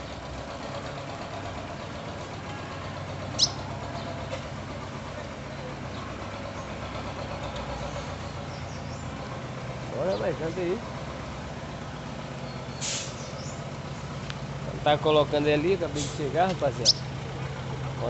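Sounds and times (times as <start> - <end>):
truck engine idling: 0.0 - 18.0
bird chirp: 3.3 - 4.3, 5.5 - 9.3, 12.4 - 14.2, 16.7 - 17.2.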